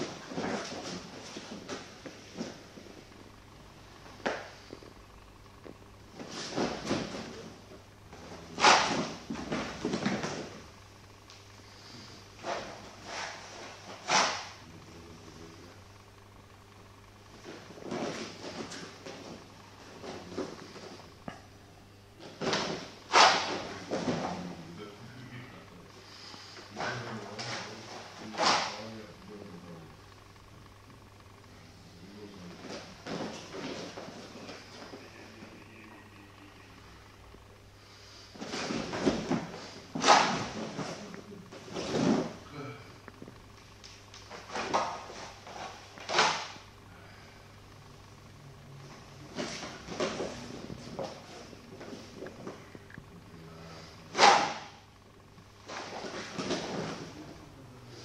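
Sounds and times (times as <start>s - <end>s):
low steady hum: 0.0s - 58.0s
wooden sword swishing: 22.6s - 24.2s.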